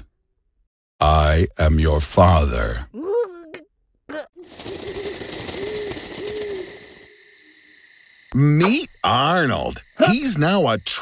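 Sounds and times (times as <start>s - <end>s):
owl hooting: 4.4s - 7.9s.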